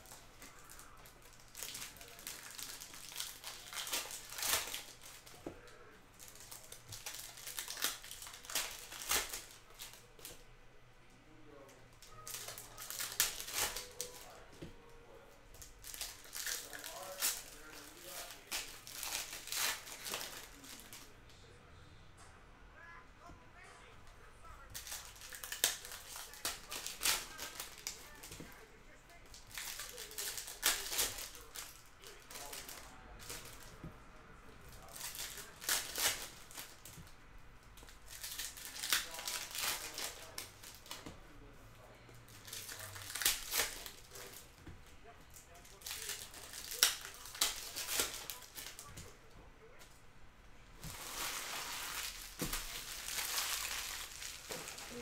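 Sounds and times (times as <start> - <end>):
cards rustling: 0.0 - 10.4, 11.6 - 21.2, 24.5 - 50.0, 50.8 - 55.0
foil wrappers crinkling and tearing: 0.0 - 10.4, 12.0 - 21.2, 24.5 - 33.9, 34.6 - 37.2, 37.8 - 44.7, 45.3 - 49.2, 50.8 - 55.0.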